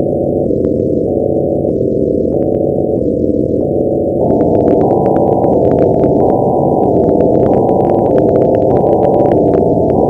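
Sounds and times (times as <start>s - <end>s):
harsh distorted electronic noise: 0.0s - 10.0s
faint crackles: 0.2s - 10.0s.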